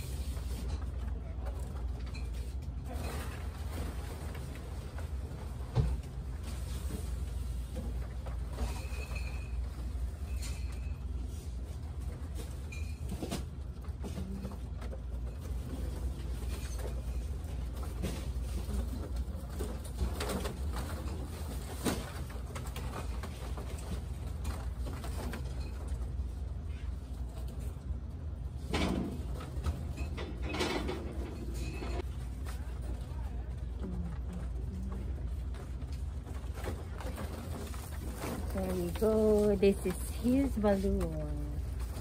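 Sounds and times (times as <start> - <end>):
foil balloons rustling: 0.0 - 28.0, 31.7 - 42.0
steady low hum: 31.1 - 42.0.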